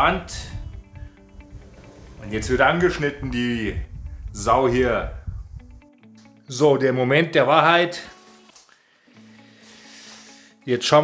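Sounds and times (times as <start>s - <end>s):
faint background music: 0.0s - 11.0s
plastic rustling: 8.0s - 8.8s.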